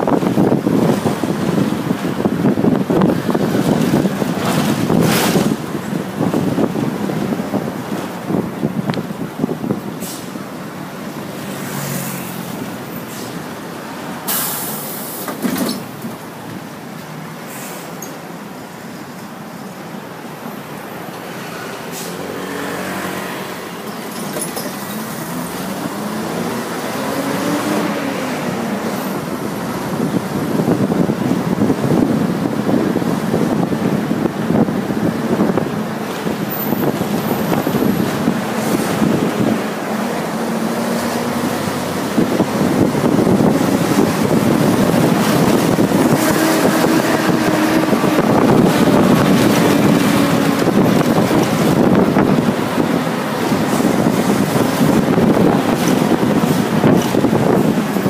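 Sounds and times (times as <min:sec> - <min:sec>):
wind buffeting microphone: 0:00.0 - 0:14.2, 0:24.7 - 0:58.0
bus engine and road noise: 0:00.0 - 0:58.0.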